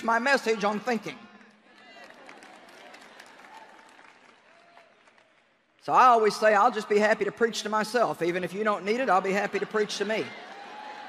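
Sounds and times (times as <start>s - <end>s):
faint applause: 0.0s - 5.8s.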